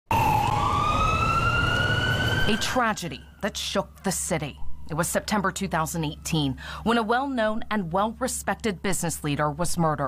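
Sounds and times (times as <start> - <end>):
siren rising wail: 0.1 - 7.4.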